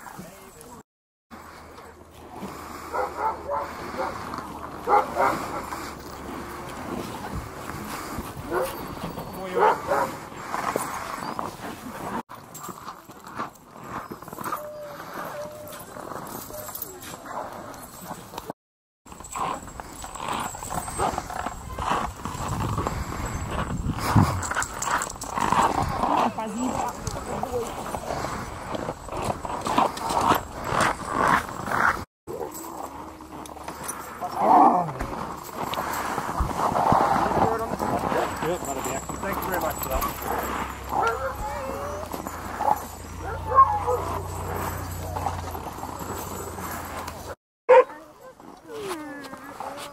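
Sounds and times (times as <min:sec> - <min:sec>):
people talking: 0:00.0 - 0:00.8, 0:26.0 - 0:28.0, 0:37.3 - 0:40.2, 0:47.9 - 0:49.9
sled dogs barking and yelping: 0:01.4 - 0:18.5, 0:19.1 - 0:49.9.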